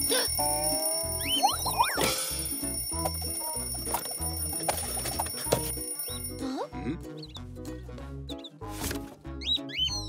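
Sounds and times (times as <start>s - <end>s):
alarm clock ringing: 0.0s - 6.5s
cartoon background music: 0.0s - 10.0s.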